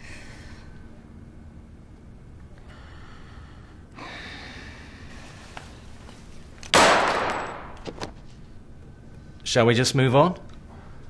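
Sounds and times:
sharp explosive bang: 0:06.8 - 0:07.7.

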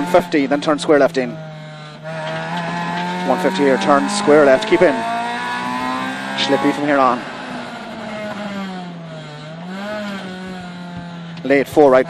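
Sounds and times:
rally car engine revving: 0:00.0 - 0:12.0.

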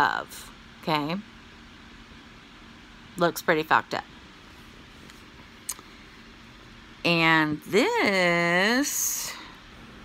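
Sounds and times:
woman's voice: 0:00.0 - 0:01.3, 0:03.2 - 0:04.1, 0:07.0 - 0:09.6
faint steady hum: 0:00.0 - 0:10.0.

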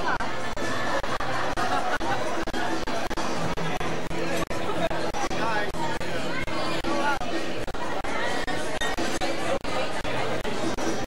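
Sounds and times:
crowd chattering in a hall: 0:00.0 - 0:11.0.

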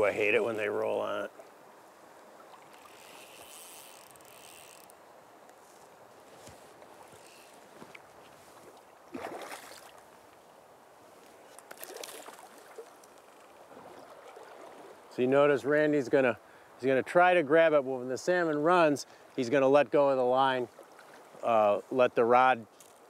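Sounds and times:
river current rushing: 0:00.0 - 0:19.5
water splashes: 0:07.8 - 0:10.4, 0:11.6 - 0:15.2, 0:20.3 - 0:21.6.

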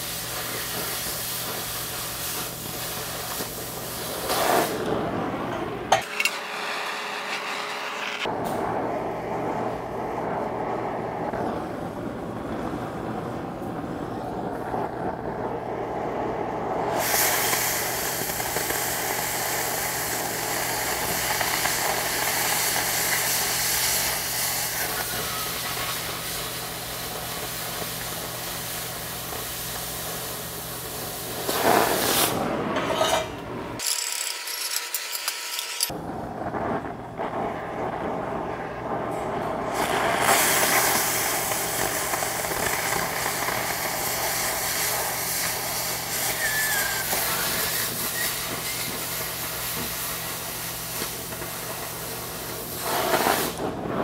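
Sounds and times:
cutting torch hissing: 0:00.0 - 0:54.0.

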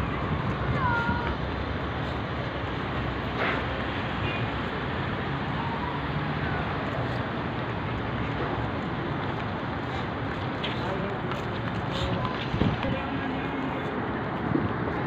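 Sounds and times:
busy courtyard background noise: 0:00.0 - 0:15.0.

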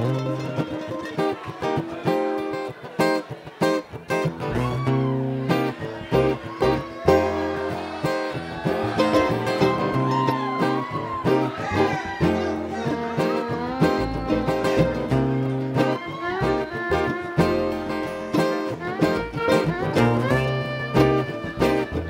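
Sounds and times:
upright bass: 0:00.0 - 0:01.1, 0:03.9 - 0:22.0
acoustic guitar strumming: 0:00.0 - 0:22.0
banjo: 0:00.0 - 0:22.0
fiddle: 0:00.0 - 0:22.0
mandolin picking: 0:00.0 - 0:22.0.

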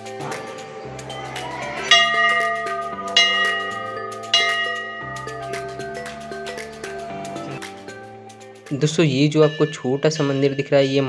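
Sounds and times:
large brass bell ringing: 0:00.0 - 0:07.6.

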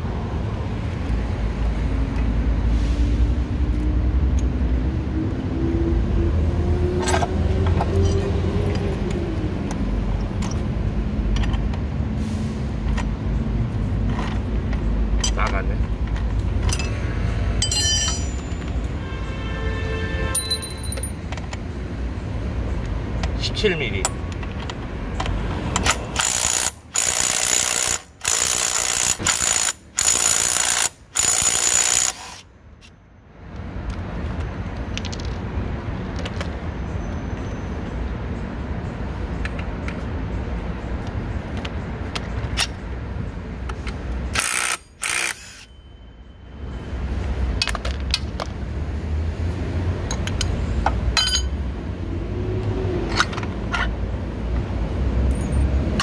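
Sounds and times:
tools clicking and clinking: 0:07.0 - 0:11.9, 0:14.0 - 0:18.9, 0:20.3 - 0:21.7, 0:24.0 - 0:33.0, 0:33.8 - 0:36.6, 0:41.0 - 0:42.9, 0:43.6 - 0:45.8, 0:47.6 - 0:48.6, 0:50.0 - 0:51.6, 0:53.0 - 0:54.0, 0:55.2 - 0:56.0
impact wrench bursts: 0:25.8 - 0:32.4, 0:44.3 - 0:45.7.

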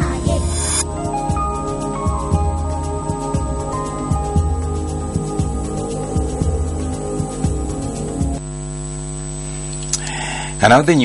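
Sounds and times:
tv ident music: 0:00.0 - 0:08.4
electrical mains hum: 0:00.0 - 0:11.0.

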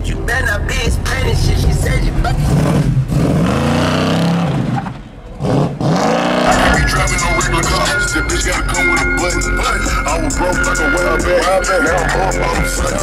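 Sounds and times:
car engine revving: 0:02.4 - 0:08.5
hip-hop music with rap vocals: 0:06.4 - 0:13.0.

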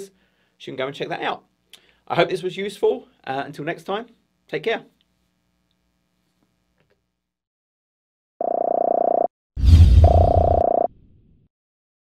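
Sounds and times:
buzzy tone: 0:10.0 - 0:10.9.

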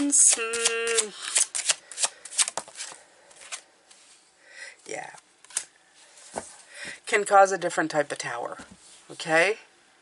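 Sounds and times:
cards being shuffled: 0:00.0 - 0:04.1, 0:05.4 - 0:05.7.

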